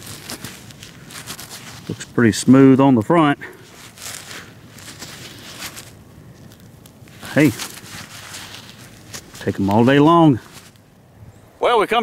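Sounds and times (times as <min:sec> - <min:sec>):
gloved fingers scraping soil: 0:00.0 - 0:10.9.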